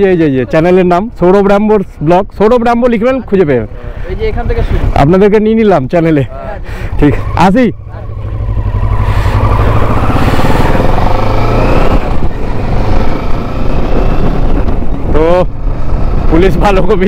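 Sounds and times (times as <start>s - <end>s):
motorcycle engine accelerating: 6.3s - 17.0s.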